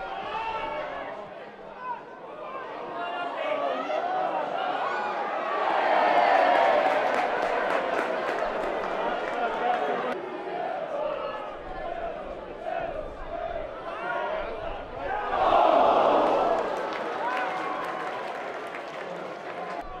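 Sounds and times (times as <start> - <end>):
crowd shouting: 0.0 - 20.0
rapid sharp claps: 6.3 - 10.1.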